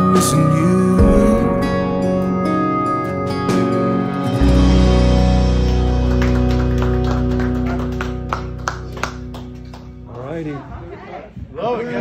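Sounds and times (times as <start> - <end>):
country song held chord: 0.0 - 7.0
plucked guitar notes: 0.0 - 10.0.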